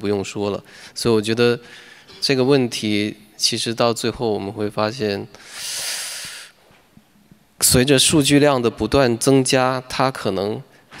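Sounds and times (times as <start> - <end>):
man speaking: 0.0 - 5.4, 7.6 - 11.0.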